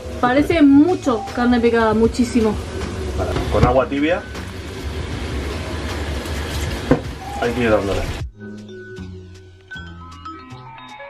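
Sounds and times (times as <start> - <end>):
tap water running into colander: 0.2 - 8.2.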